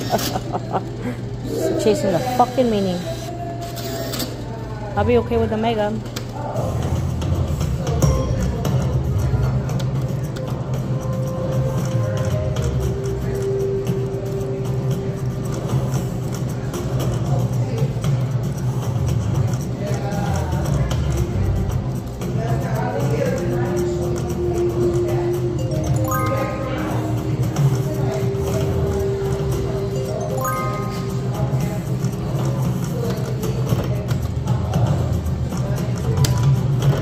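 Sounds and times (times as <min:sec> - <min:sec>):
low background hum: 0:00.0 - 0:37.0
slot machine music and tones: 0:24.5 - 0:32.1.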